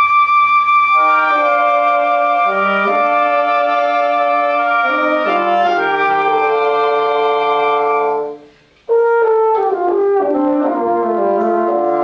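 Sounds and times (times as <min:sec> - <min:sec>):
woodwind quintet playing: 0:00.0 - 0:12.0.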